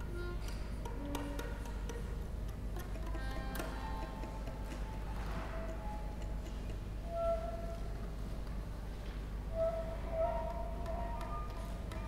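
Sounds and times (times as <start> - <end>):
ticks and clicks: 0.4 - 5.0.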